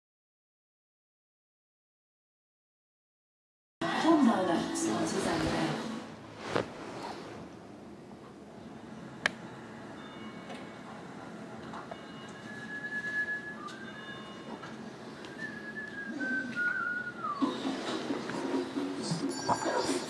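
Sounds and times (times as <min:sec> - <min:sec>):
whistled notes through tv speaker: 0:12.2 - 0:18.0.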